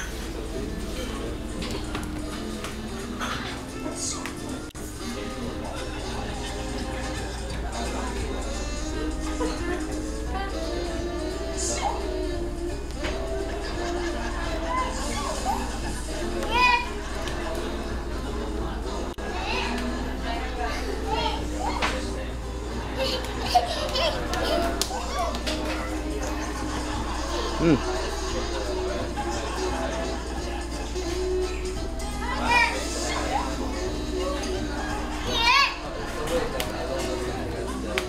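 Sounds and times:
background talk: 0.0s - 38.0s
faint background music: 0.0s - 38.0s.

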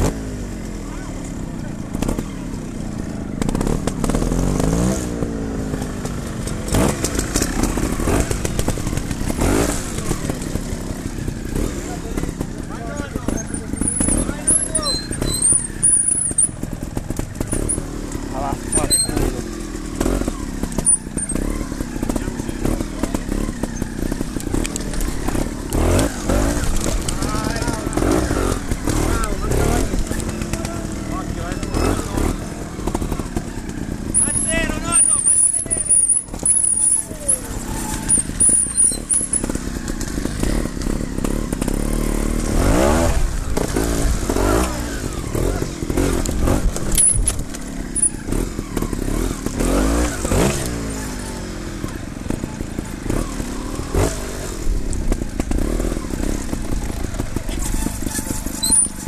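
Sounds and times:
motorcycle engine revving: 0.0s - 59.0s
thin high squeal: 57.6s - 59.0s.

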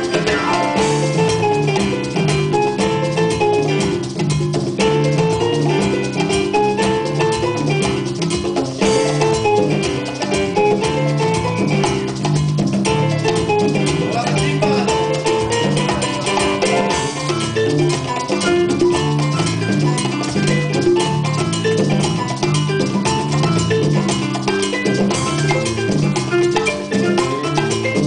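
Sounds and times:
congas and hand drums: 0.0s - 28.0s
electric bass guitar: 0.0s - 28.0s
salsa band playing: 0.0s - 28.0s.

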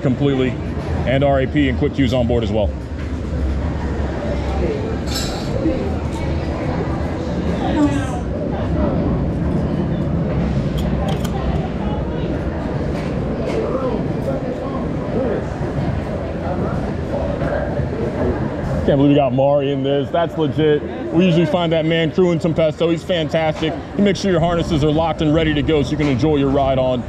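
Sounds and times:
indistinct chatter: 0.0s - 27.0s.

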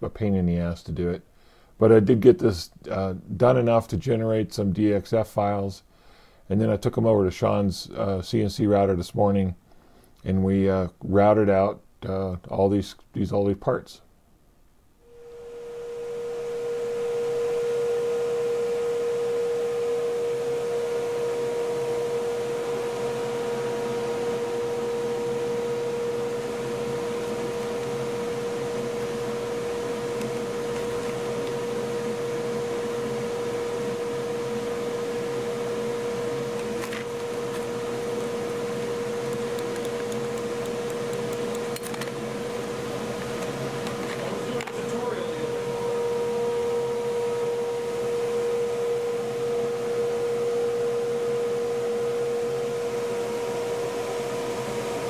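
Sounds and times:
high machine hum: 15.0s - 55.0s.

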